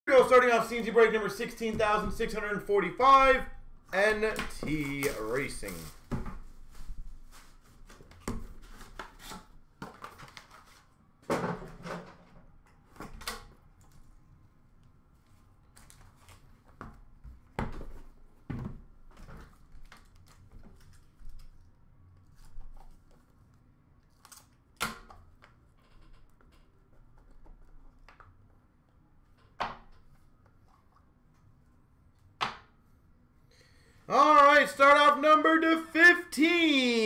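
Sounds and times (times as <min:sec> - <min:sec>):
hands handling cardboard boxes: 0:04.0 - 0:10.8.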